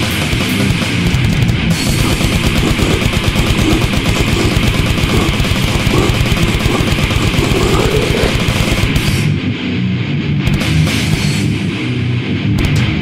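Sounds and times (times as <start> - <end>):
fast heavy drumming: 0.0 - 9.3
distorted guitars and bass: 0.0 - 13.0.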